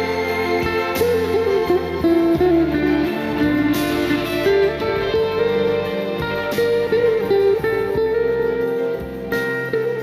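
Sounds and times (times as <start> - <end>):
backing track with deep bass: 0.0 - 10.0
plucked lute melody: 0.0 - 10.0.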